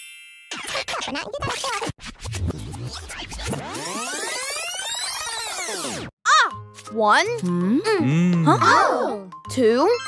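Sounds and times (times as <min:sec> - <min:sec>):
background music: 0:06.3 - 0:10.0.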